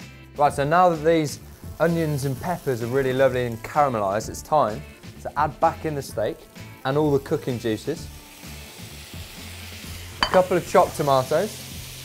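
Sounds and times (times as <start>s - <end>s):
background music with bass line: 0.0s - 12.0s
meat sizzling in a frying pan: 0.0s - 12.0s.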